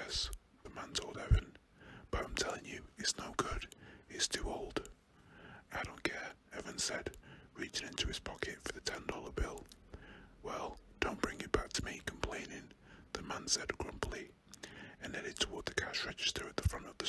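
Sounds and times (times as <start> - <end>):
man whispering: 0.0 - 4.9, 5.5 - 17.0.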